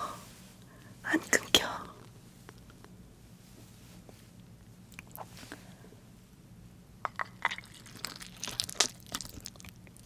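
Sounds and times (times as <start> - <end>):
woman whispering: 1.0 - 2.1.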